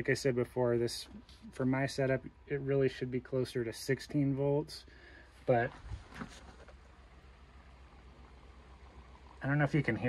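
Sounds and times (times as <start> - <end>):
low steady hum: 0.0 - 10.0
faint battery electrolyte bubbling: 6.8 - 10.0.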